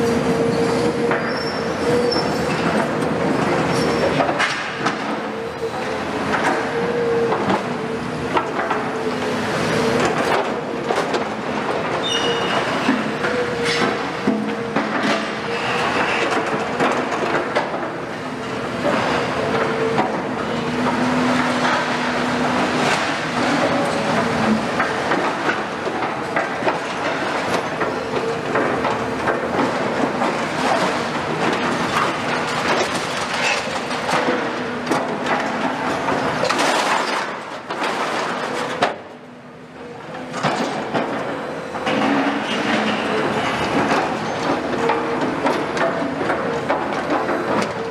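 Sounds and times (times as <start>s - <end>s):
diesel engines and hydraulics drone: 0.0s - 47.9s.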